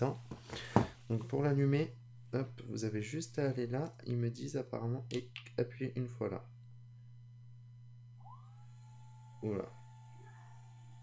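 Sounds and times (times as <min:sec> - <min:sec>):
low steady hum: 0:00.0 - 0:11.0
drone fan whine: 0:05.7 - 0:11.0.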